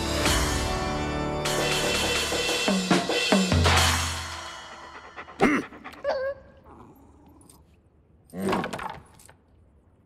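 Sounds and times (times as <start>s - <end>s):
cartoon dog vocal sounds: 5.3s - 7.5s.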